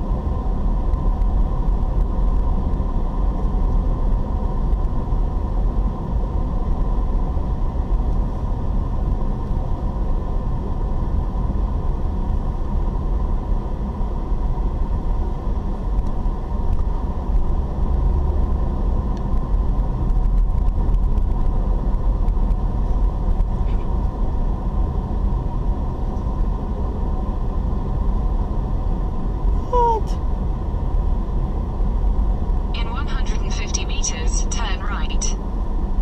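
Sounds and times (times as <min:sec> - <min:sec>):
car engine and tyres rumbling: 0:00.0 - 0:36.0.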